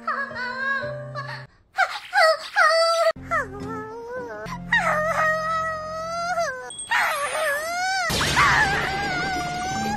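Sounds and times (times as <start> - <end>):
cartoon girl whimpering cry: 0.0 - 9.9
low background music tone: 3.2 - 9.9.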